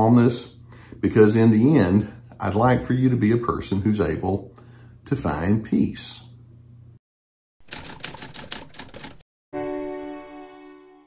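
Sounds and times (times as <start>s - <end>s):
typewriter key clicks: 7.7s - 9.2s.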